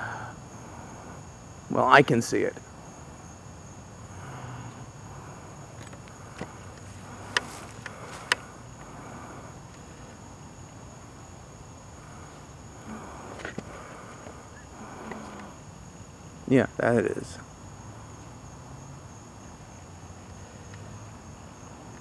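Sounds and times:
night insects droning: 0:00.0 - 0:22.0.

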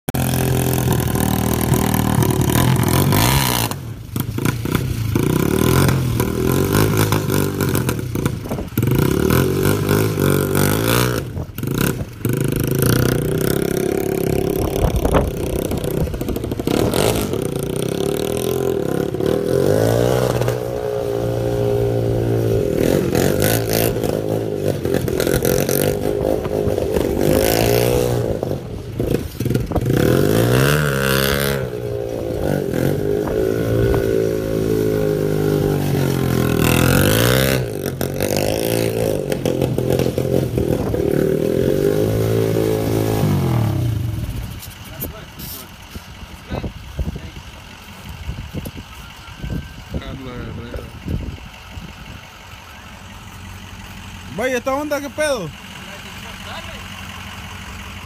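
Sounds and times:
small motorcycle engine revving: 0:00.1 - 0:58.0.

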